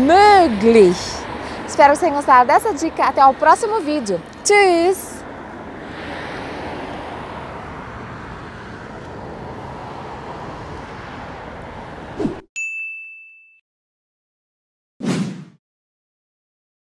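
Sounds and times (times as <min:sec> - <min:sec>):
bright chime ding: 0:12.6 - 0:13.6.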